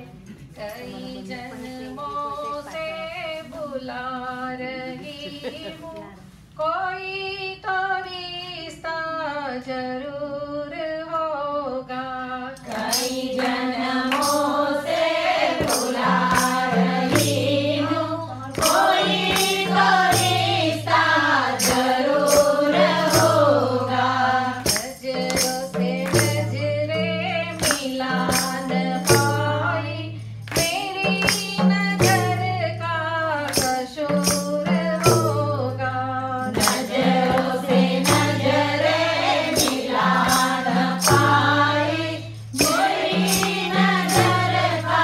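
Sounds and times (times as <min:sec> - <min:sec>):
women singing together: 0:00.6 - 0:06.0, 0:06.6 - 0:45.0
hand claps: 0:12.6 - 0:14.6, 0:18.5 - 0:20.4, 0:24.6 - 0:26.6, 0:27.6 - 0:29.5, 0:30.4 - 0:32.4, 0:33.4 - 0:35.2, 0:36.5 - 0:38.4, 0:39.5 - 0:41.4, 0:42.6 - 0:44.7.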